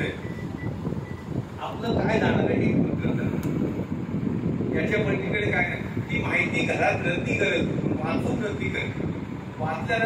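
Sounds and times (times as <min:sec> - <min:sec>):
heavy low rumble: 0:00.0 - 0:10.0
man speaking over loudspeaker: 0:09.6 - 0:10.0.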